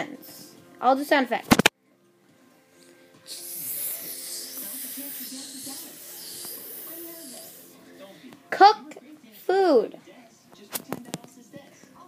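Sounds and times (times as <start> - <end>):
faint tv music: 0.0 - 12.0
person hissing shhh: 3.2 - 7.8
tv voices: 3.2 - 12.0.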